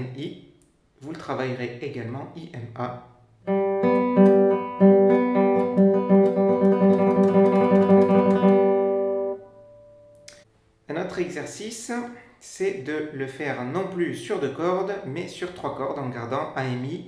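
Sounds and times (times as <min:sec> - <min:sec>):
classical guitar fingerpicked trill: 0:03.5 - 0:10.3.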